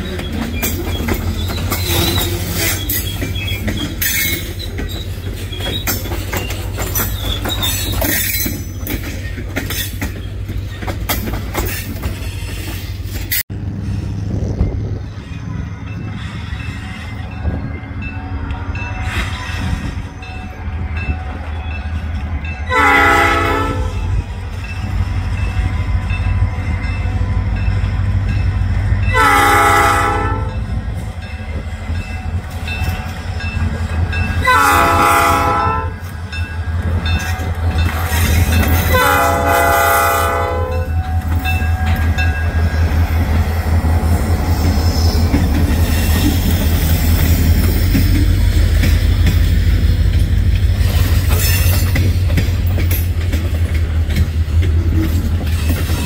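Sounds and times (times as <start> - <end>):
locomotive engine rumbling: 0.0 - 56.0
train wheels clicking on rail joints: 0.0 - 56.0
locomotive horn blasts: 22.6 - 24.2, 29.1 - 30.6, 34.4 - 36.0, 38.8 - 42.1.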